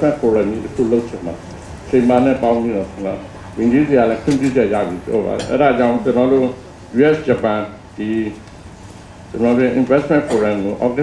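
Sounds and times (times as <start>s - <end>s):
man speaking into a microphone: 0.0s - 8.5s, 9.3s - 11.0s.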